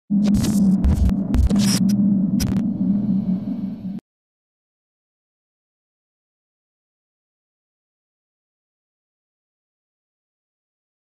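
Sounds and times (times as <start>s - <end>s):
buzzing hum: 0.0s - 4.0s
crackling static bursts: 0.1s - 2.7s.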